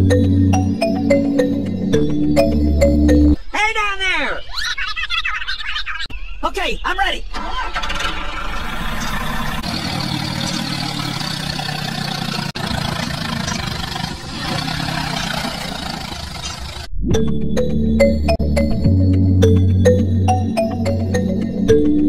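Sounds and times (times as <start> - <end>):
tractor engine running: 7.3 - 16.9.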